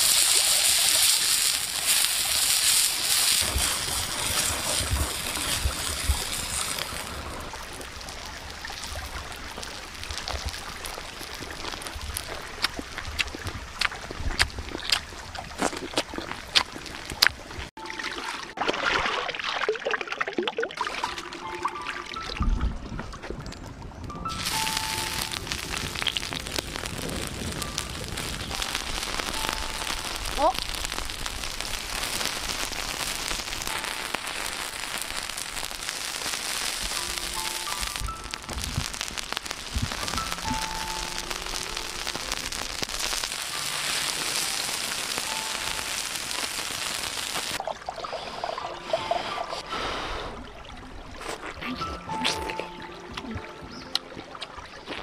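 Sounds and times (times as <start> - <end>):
pineapple sizzling in oil: 0.0 - 13.3, 24.3 - 47.6
running stream water: 0.0 - 55.0
light melodic background music: 17.8 - 18.7, 20.8 - 31.0, 33.6 - 35.2, 36.4 - 47.0, 48.3 - 55.0.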